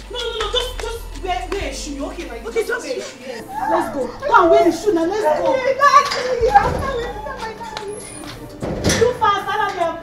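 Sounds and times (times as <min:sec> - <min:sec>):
women calling out and laughing: 0:02.5 - 0:08.3.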